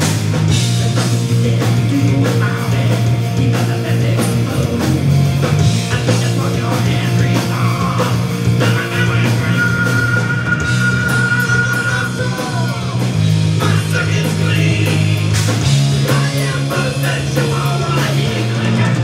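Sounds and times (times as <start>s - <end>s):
bass guitar: 0.0s - 19.0s
drum kit: 0.0s - 19.0s
electric guitars: 0.0s - 19.0s.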